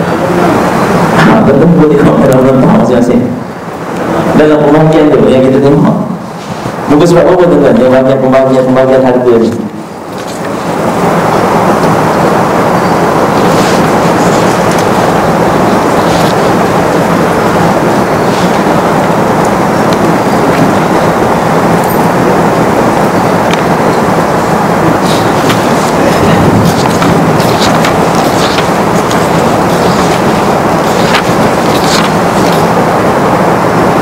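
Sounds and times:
loud static rushing noise: 0.0s - 34.0s.

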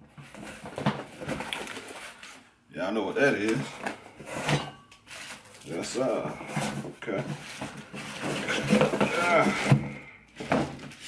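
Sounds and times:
man speaking: 2.7s - 3.8s, 5.6s - 7.4s
cardboard box rustling: 5.1s - 11.0s.

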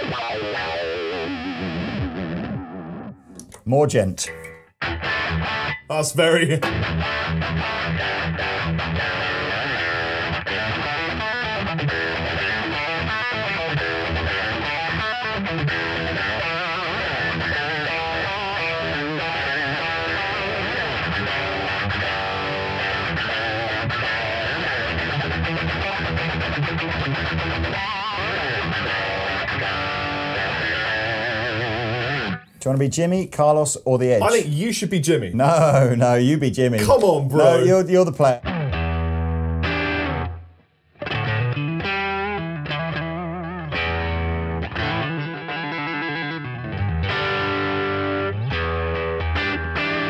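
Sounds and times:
distorted electric guitar riffing: 0.0s - 3.6s, 4.3s - 32.6s, 36.8s - 50.0s.

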